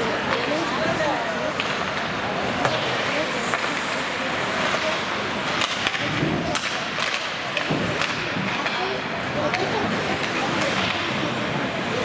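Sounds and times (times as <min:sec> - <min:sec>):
hockey sticks and puck clacking: 0:00.1 - 0:00.8, 0:01.4 - 0:12.0
skate blades scraping ice: 0:00.4 - 0:12.0.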